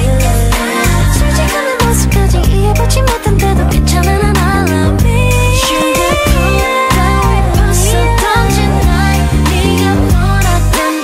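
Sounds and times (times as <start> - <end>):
electric bass notes: 0.0 - 10.8
pop song: 0.0 - 11.0
woman singing: 0.0 - 11.0.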